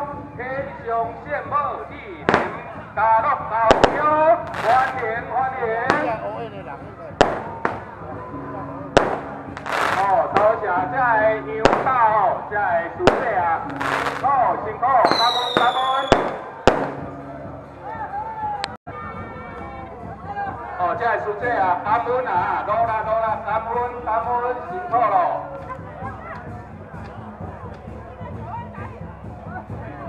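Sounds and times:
firecrackers banging: 2.2 - 3.0, 3.6 - 5.2, 5.8 - 6.5, 7.2 - 8.2, 8.9 - 10.7, 11.6 - 12.4, 13.0 - 14.4, 15.0 - 17.3.

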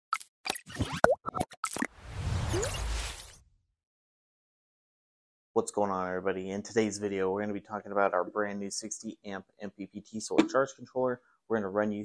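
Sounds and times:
cartoon-like pops and blips: 0.5 - 1.9.

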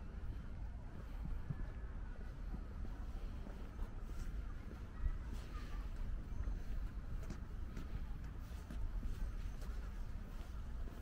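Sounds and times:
faint soft footsteps: 0.0 - 11.0
wind buffeting microphone: 0.0 - 11.0.

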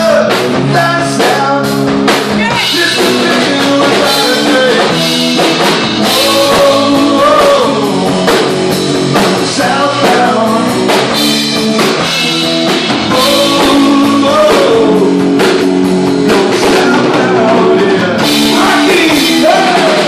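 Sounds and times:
bass guitar: 0.0 - 20.0
drum kit beat: 0.0 - 20.0
electric guitar: 0.0 - 20.0.

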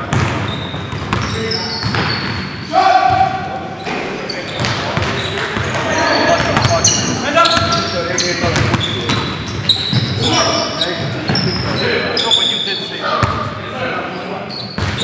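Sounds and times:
sneaker squeaks: 0.0 - 15.0
basketball bouncing on hardwood: 0.1 - 2.4
players calling out: 1.2 - 15.0.

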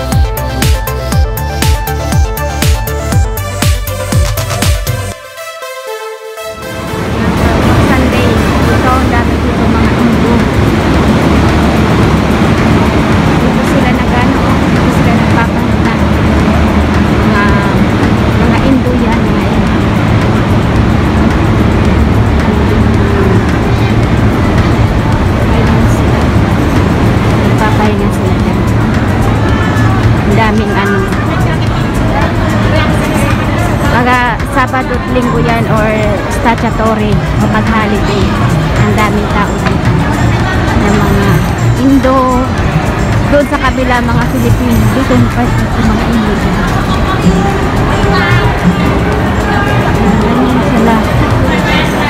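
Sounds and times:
music: 0.0 - 52.0
traffic rumble: 6.5 - 52.0
crowd chatter: 6.7 - 52.0.

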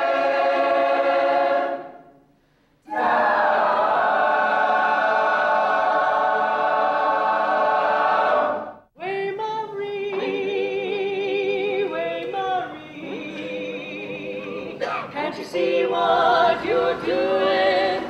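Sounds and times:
girls choir singing sustained chords: 0.0 - 2.3, 2.9 - 8.9, 12.6 - 18.0.

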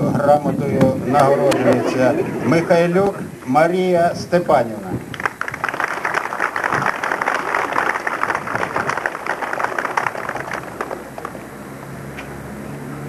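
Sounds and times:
crowd applauding: 5.1 - 11.4.

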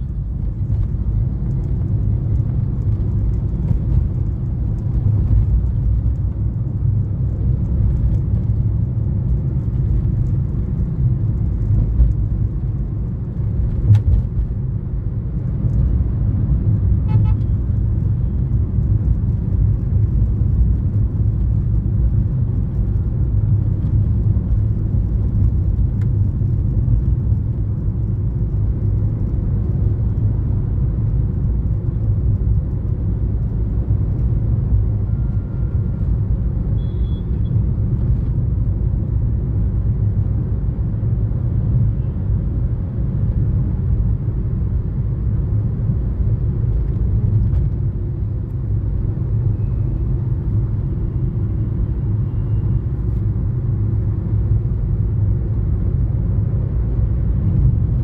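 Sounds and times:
car cabin road rumble: 0.0 - 58.0.

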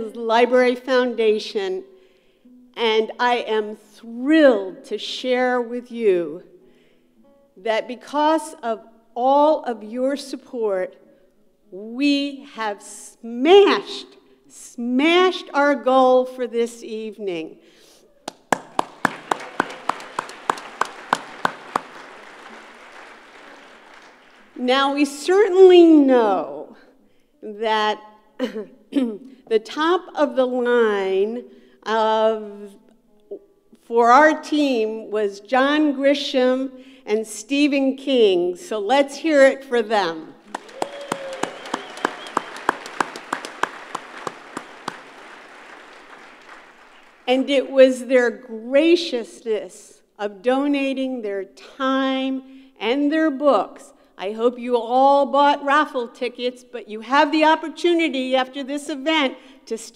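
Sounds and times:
close hands clapping loudly: 18.2 - 24.6, 40.4 - 47.3
loud single claps close by: 18.3 - 24.4
audience applauding: 18.3 - 24.6, 40.4 - 47.3.

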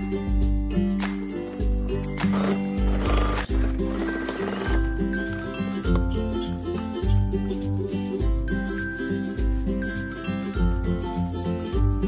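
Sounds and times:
background music: 0.0 - 12.0
sewing machine stitching: 2.2 - 5.4.

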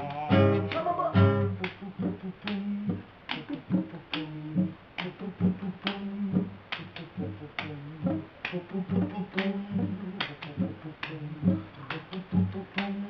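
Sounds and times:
acoustic guitar reggae groove: 0.0 - 2.2.

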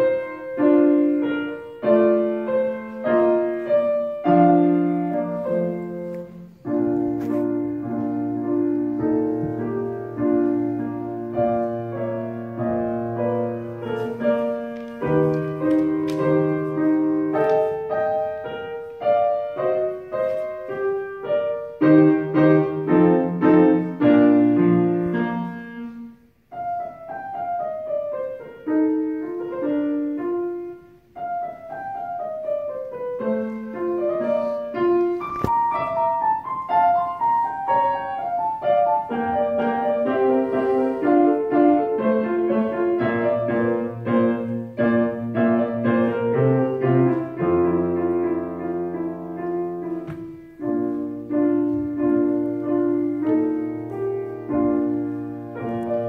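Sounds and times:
solo classical piano: 0.0 - 56.0.

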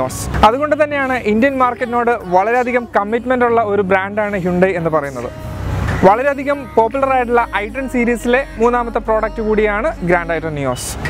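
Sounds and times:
man talking: 0.0 - 5.4, 6.0 - 11.0.

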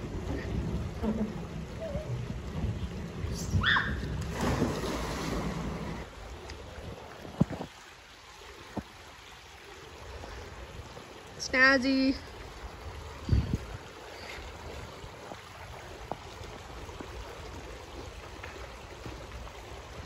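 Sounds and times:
splash into pool: 3.6 - 6.1.

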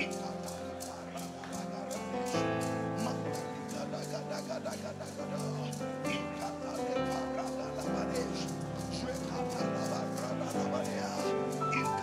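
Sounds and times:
congregation praying aloud: 0.0 - 12.0.

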